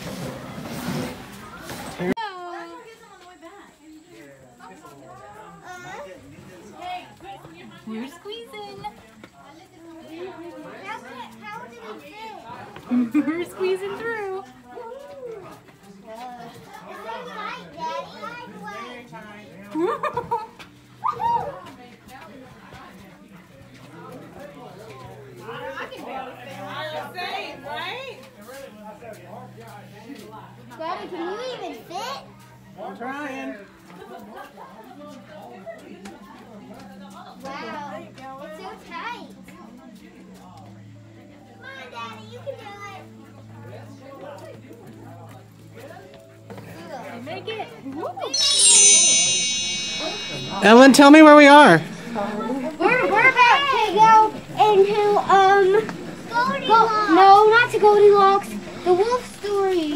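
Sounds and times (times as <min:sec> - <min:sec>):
children and people talking: 0:00.0 - 0:59.9.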